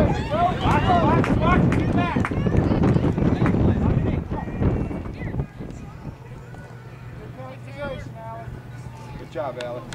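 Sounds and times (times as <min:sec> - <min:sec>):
distant voices calling out: 0:00.0 - 0:09.9
steady low hum: 0:00.0 - 0:09.9.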